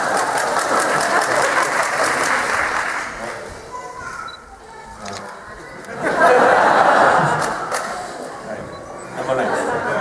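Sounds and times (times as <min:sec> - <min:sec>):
audience laughing: 0:00.0 - 0:02.8, 0:05.9 - 0:08.3, 0:09.1 - 0:10.0
audience clapping: 0:00.0 - 0:03.5, 0:06.8 - 0:08.1.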